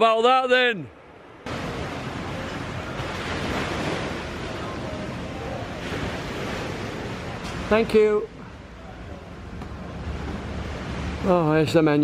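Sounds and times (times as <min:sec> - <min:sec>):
surf washing on beach: 0:01.0 - 0:12.0.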